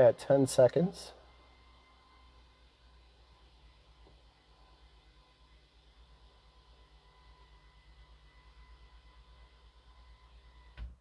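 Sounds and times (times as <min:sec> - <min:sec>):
faint steady high tones: 0:00.0 - 0:10.9
electric motor fast-pulsing hum: 0:00.0 - 0:11.0.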